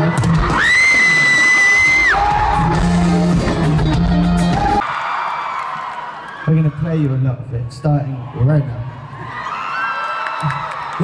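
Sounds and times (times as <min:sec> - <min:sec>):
crowd cheering: 0:00.0 - 0:11.0
live rock band playing: 0:01.6 - 0:04.8.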